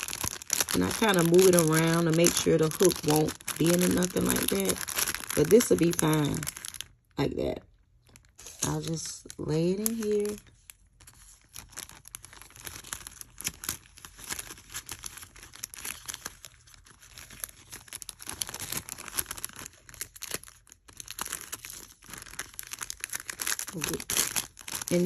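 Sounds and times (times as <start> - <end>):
cellophane bag crinkling: 0.0 - 25.0.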